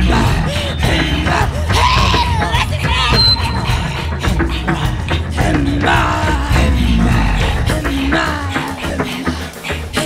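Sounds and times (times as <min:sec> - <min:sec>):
driving drum beat: 0:00.0 - 0:10.0
steady bass: 0:03.7 - 0:08.8.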